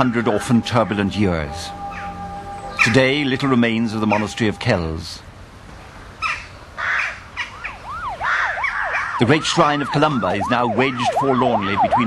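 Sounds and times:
emergency siren yelping: 0.0 - 5.0, 7.4 - 12.0
crows cawing: 6.2 - 9.2.

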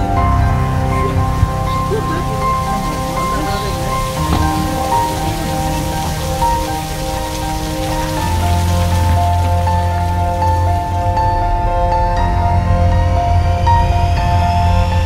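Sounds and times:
patter of falling water: 0.0 - 12.1
slow background music: 0.0 - 15.0.

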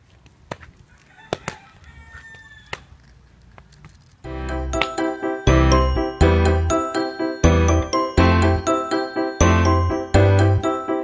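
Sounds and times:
rooster crowing: 0.9 - 2.9.

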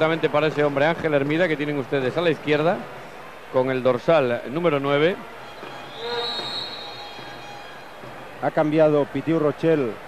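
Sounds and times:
high-pitched whistle blast: 5.4 - 8.0.

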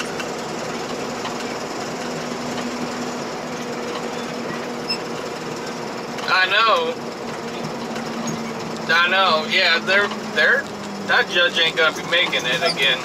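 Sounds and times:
car engine and road noise: 0.0 - 13.0
constant low hum: 0.0 - 13.0.

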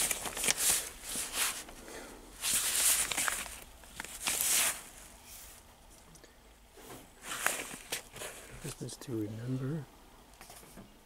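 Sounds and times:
record jackets sliding and scraping: 0.0 - 1.8, 2.4 - 5.6, 6.8 - 8.8.

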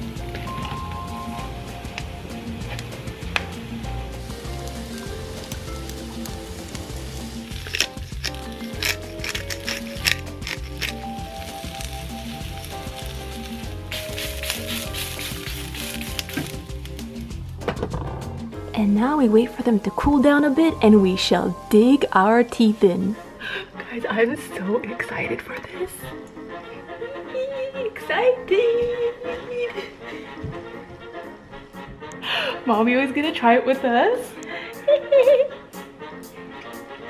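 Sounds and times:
mushrooms sizzling in oil: 0.0 - 17.6, 18.8 - 25.2
music with a steady beat: 0.0 - 18.8, 34.4 - 37.0.

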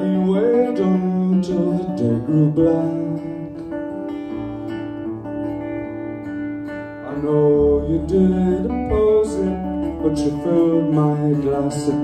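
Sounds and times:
acoustic guitar strummed softly: 0.0 - 12.0.

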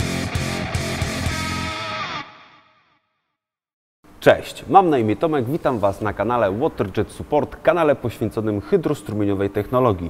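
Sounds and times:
intro music with steady beat: 0.0 - 2.1.

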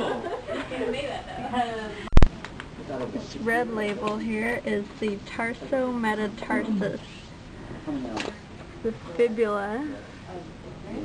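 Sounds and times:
low room hiss: 0.0 - 11.0
woman speaking: 3.3 - 7.3, 8.8 - 10.0.

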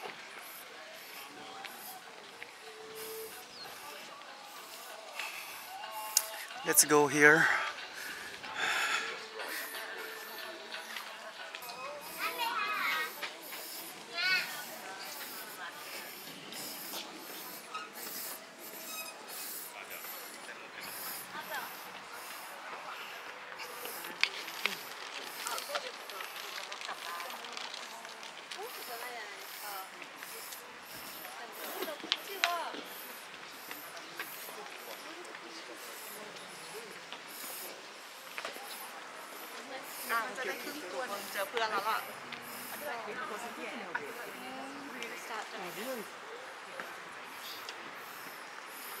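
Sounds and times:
person panting hard: 7.4 - 10.4.

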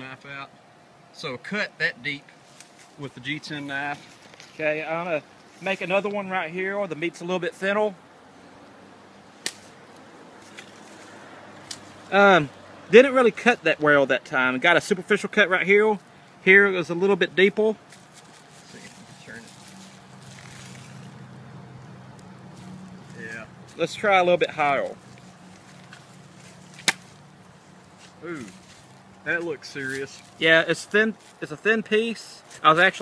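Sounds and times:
knife striking wrapped meat: 26.8 - 27.1.

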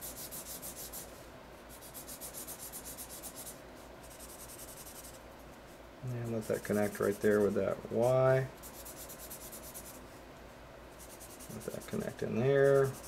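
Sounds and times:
marker rubbing on paper: 0.0 - 5.2, 6.2 - 10.0, 11.0 - 13.0.

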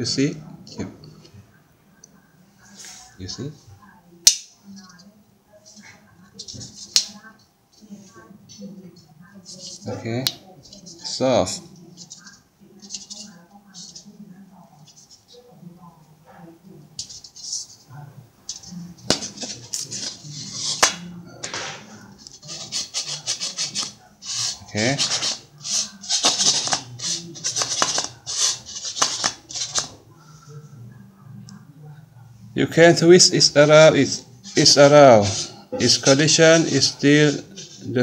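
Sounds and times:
metal rim scraping on table: 19.1 - 29.9, 34.0 - 38.0.

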